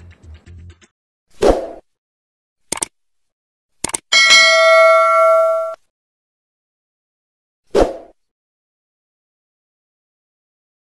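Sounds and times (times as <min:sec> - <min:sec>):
notification bell ding: 0:04.2 - 0:05.8.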